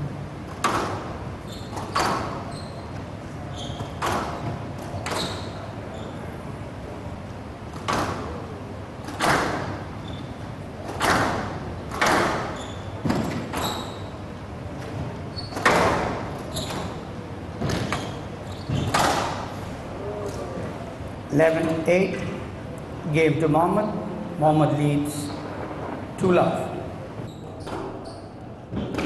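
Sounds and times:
squash ball thuds echoing: 0:00.5 - 0:02.5, 0:03.8 - 0:05.6, 0:07.7 - 0:10.0, 0:10.7 - 0:14.1, 0:14.8 - 0:19.6.

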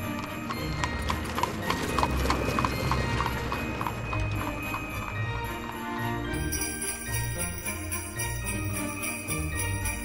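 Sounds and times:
horse hooves clip-clopping: 0:00.0 - 0:10.0
soft instrumental music: 0:00.0 - 0:10.0.

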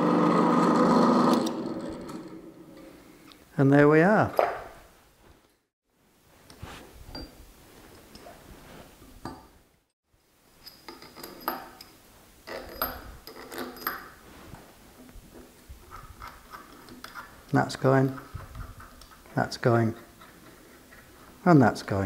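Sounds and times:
metal tools clinking and knocking: 0:07.1 - 0:07.4, 0:10.6 - 0:14.2.

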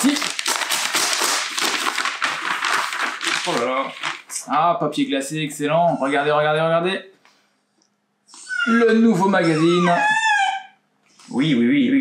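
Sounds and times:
paper envelope tearing and crinkling: 0:00.0 - 0:04.6.

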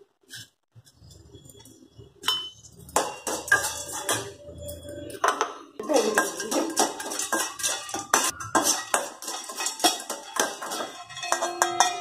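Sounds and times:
hand clinking steel plate: 0:02.2 - 0:12.0.

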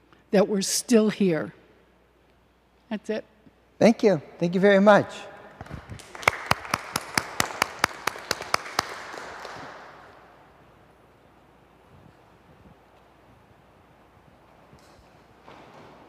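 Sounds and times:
audience applause: 0:05.6 - 0:10.4
sharp steady claps: 0:05.6 - 0:10.4.

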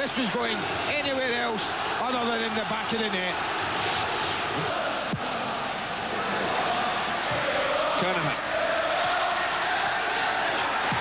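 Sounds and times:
stadium crowd singing and chanting: 0:00.0 - 0:11.0.

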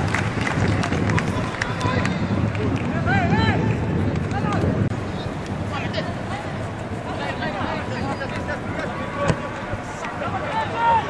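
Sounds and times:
crowd and field noise: 0:00.0 - 0:11.0
players shouting: 0:04.4 - 0:11.0.

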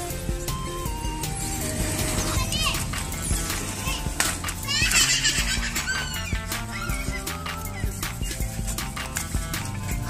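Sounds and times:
background music: 0:00.0 - 0:10.0
child crying out: 0:03.9 - 0:08.4.

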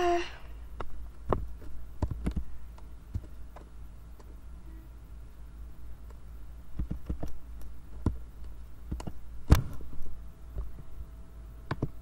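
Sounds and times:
steady low hum: 0:00.0 - 0:12.0
keyboard and mouse clicks: 0:00.8 - 0:04.4, 0:06.0 - 0:09.8, 0:11.7 - 0:12.0.

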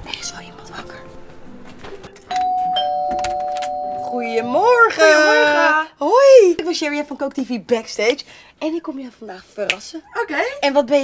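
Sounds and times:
doorbell chime ding-dong: 0:02.3 - 0:04.7.

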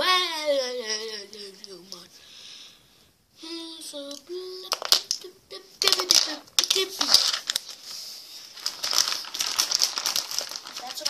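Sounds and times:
plastic toys crinkling and clicking: 0:04.6 - 0:11.0.

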